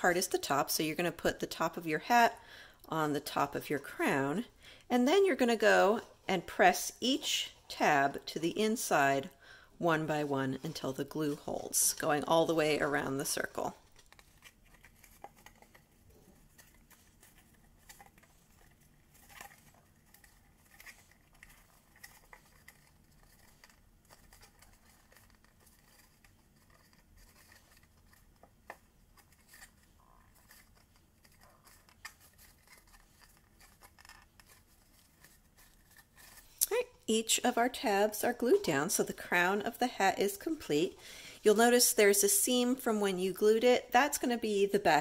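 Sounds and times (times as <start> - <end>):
paper rustling: 10.5 - 36.8.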